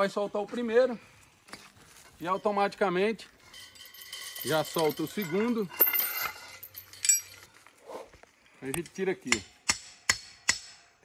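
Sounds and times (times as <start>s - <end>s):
metal clinks of fence stretcher: 3.4s - 7.5s.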